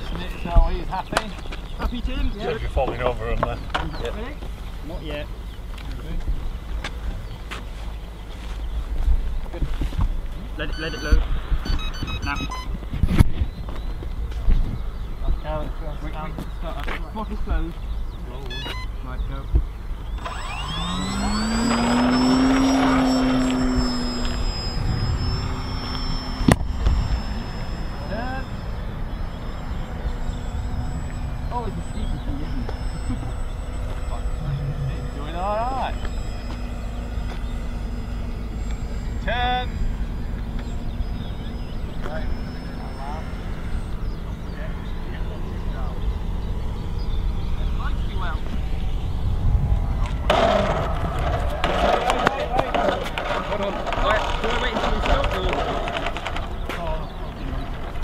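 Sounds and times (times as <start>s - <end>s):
high whine: 0.0s - 58.0s
low wind rumble: 0.0s - 58.0s
model aircraft motor and propeller: 0.0s - 58.0s.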